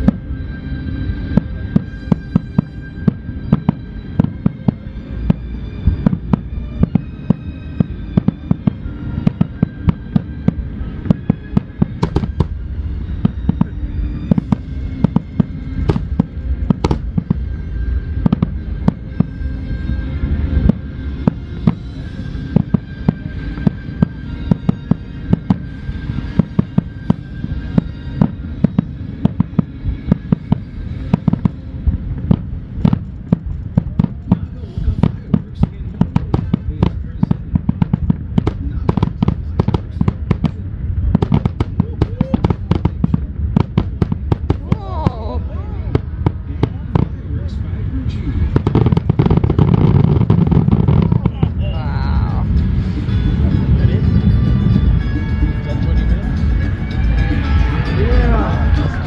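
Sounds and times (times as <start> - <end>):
low rumble: 0.0 - 59.0
music playing: 0.0 - 59.0.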